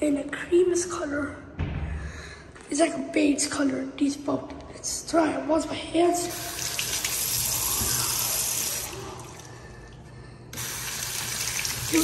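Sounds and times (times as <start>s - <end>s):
water running into sink: 6.3s - 9.7s, 10.6s - 12.0s.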